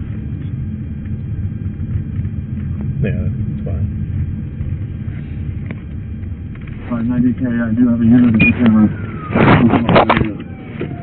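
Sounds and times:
faint siren wailing: 8.3 - 11.0.

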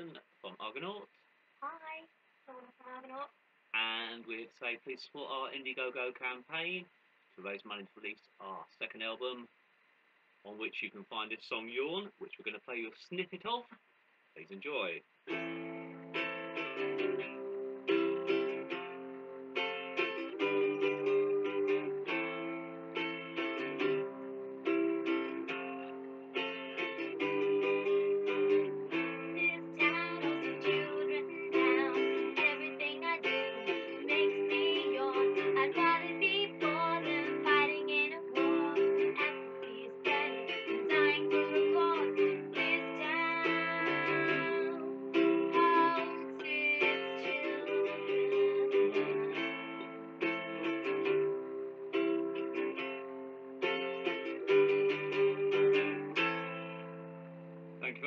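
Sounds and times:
acoustic guitar strumming: 15.3 - 58.0
woman singing: 27.8 - 49.5.

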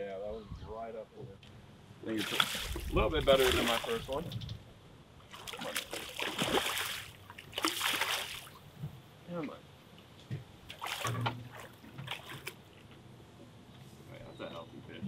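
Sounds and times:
fish thrashing and splashing: 2.2 - 4.2, 5.3 - 8.6, 10.7 - 12.6.

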